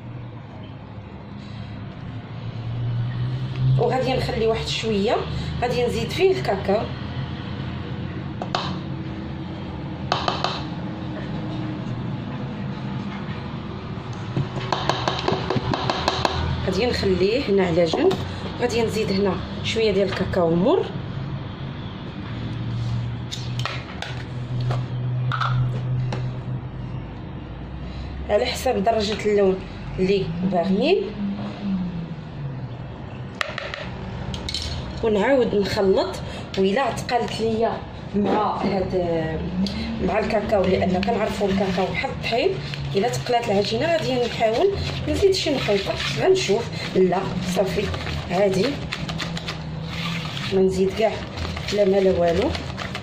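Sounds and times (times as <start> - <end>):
spatula scraping a bowl: 40.8 - 53.0.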